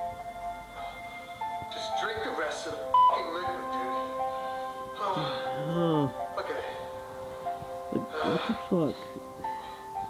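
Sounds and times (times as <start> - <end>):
background music with sustained notes: 0.0 - 10.0
person speaking: 5.0 - 6.3, 7.9 - 9.2.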